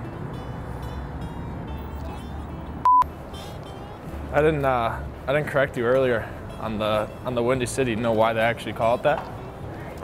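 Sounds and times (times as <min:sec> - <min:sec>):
city traffic hum: 0:00.0 - 0:10.0
electronic censor bleep: 0:02.8 - 0:03.1.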